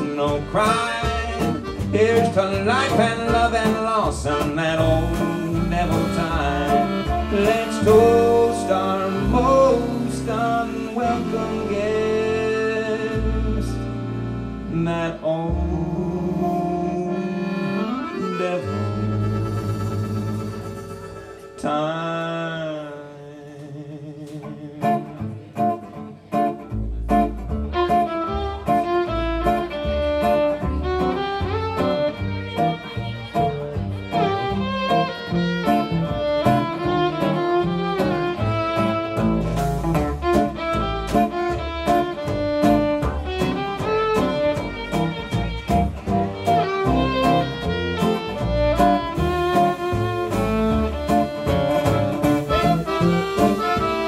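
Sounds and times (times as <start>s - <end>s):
drums: 0.0s - 12.4s, 19.0s - 21.7s, 26.9s - 54.0s
fiddle playing swing melody: 0.0s - 21.9s, 24.8s - 54.0s
upright bass: 0.0s - 22.9s, 23.7s - 54.0s
guitar: 0.0s - 54.0s.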